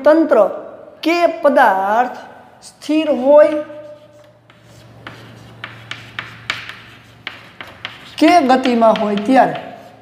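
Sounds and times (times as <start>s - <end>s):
chalk scratching on blackboard: 3.0s - 10.0s
chalk taps: 3.1s - 10.0s.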